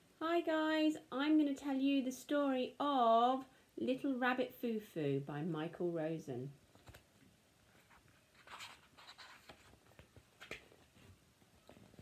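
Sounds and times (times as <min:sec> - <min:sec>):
book pages rustling and turning: 0:06.7 - 0:12.0.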